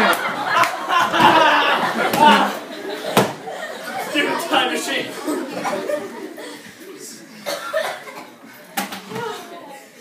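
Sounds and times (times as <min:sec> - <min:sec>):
low murmuring voices: 0:01.1 - 0:10.0.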